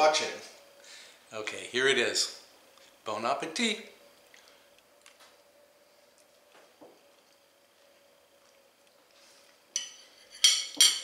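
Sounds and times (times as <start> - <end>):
faint steady hum: 0.0 - 11.0
metal spoon clinking on china plate: 9.8 - 11.0.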